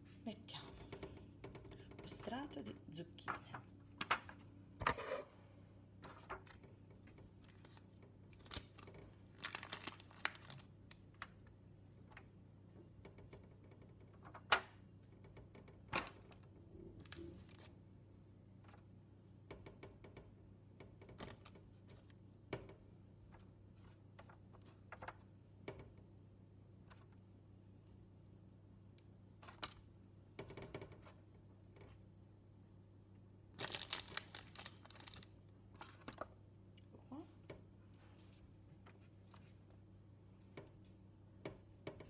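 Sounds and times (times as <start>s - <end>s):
aluminium foil tray crinkling: 7.6s - 10.7s, 33.6s - 35.3s.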